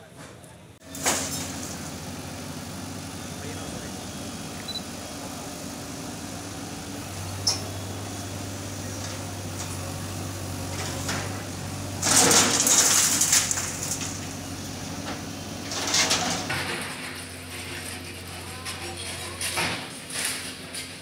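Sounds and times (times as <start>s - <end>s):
diesel engines idling: 0.7s - 19.6s.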